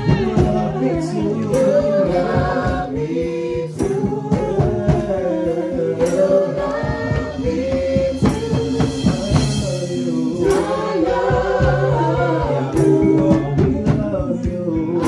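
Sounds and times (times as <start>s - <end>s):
percussion beating: 0.0s - 15.0s
voices singing worship song: 0.0s - 15.0s.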